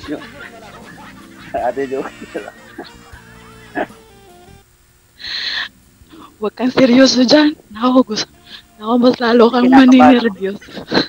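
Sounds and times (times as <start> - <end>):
soft background music: 0.0 - 4.6, 5.5 - 11.0.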